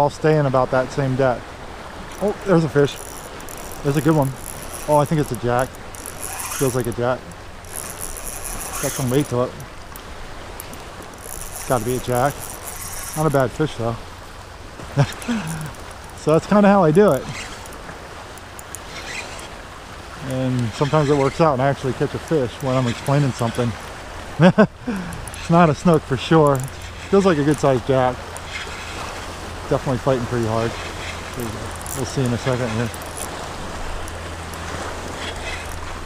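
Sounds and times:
small waves lapping: 0:00.0 - 0:36.0.

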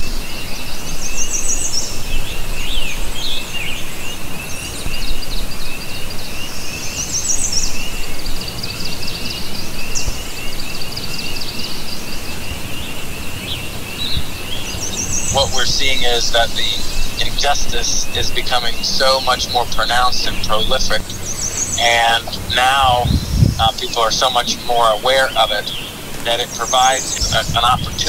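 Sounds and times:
songbirds chirping: 0:00.0 - 0:28.0
low rushing background: 0:00.3 - 0:28.0.

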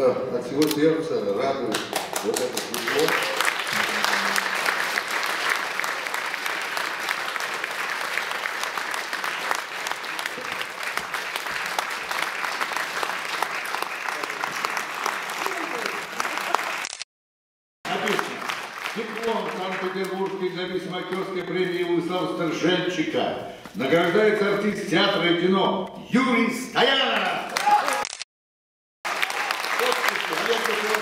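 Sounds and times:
audience applauding: 0:01.7 - 0:17.0, 0:17.8 - 0:21.4, 0:27.0 - 0:28.1, 0:29.0 - 0:31.0.

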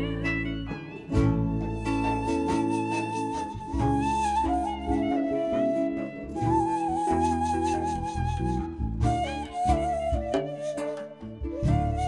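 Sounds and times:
acoustic folk music ensemble: 0:00.0 - 0:12.0.

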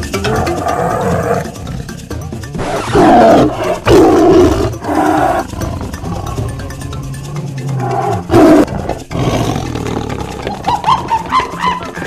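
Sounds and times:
background music with steady beat: 0:00.0 - 0:12.0
lion roaring: 0:00.2 - 0:02.0, 0:02.6 - 0:06.6, 0:07.6 - 0:10.8.

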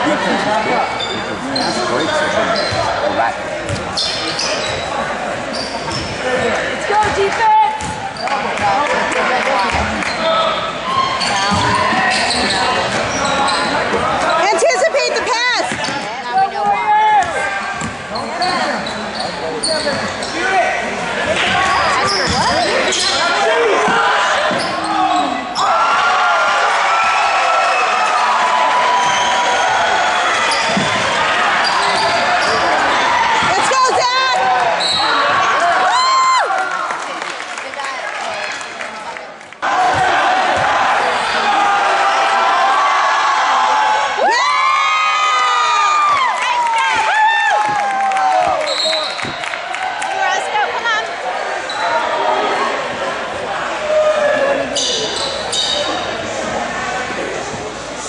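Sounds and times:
voices echoing in a hall: 0:00.0 - 0:58.0
basketball bouncing on court: 0:07.0 - 0:08.2.

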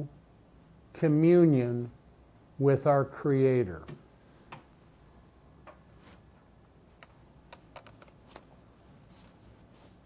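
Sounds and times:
paper clicks: 0:07.0 - 0:08.5.

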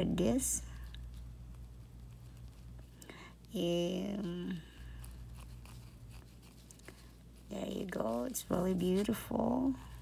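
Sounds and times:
low steady hum: 0:00.0 - 0:10.0
scratchy brushing on nail: 0:00.7 - 0:10.0.

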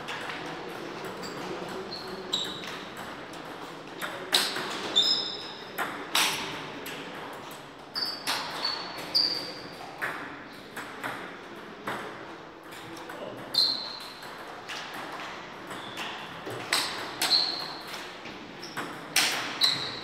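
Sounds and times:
table tennis ball hits: 0:00.1 - 0:05.0, 0:05.8 - 0:07.4, 0:09.9 - 0:20.0.

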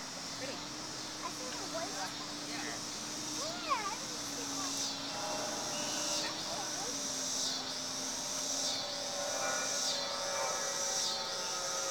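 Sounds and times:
insect chorus buzzing: 0:00.0 - 0:11.9.

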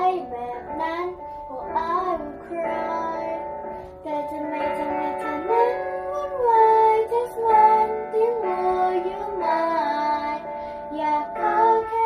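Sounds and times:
girl singing: 0:00.0 - 0:12.0.

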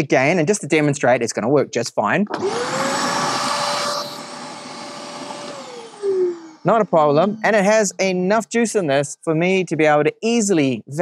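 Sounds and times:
vacuum cleaner motor whine: 0:02.3 - 0:07.9.

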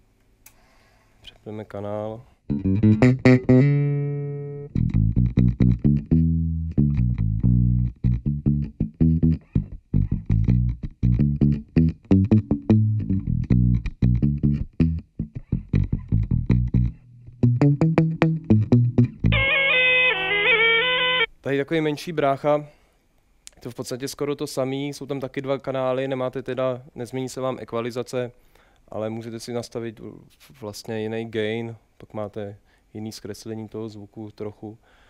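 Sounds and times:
electric bass guitar notes: 0:02.5 - 0:21.3.

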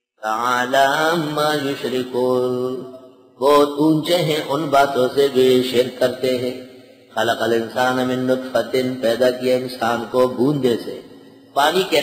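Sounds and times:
man chanting a recitation: 0:00.2 - 0:12.0.

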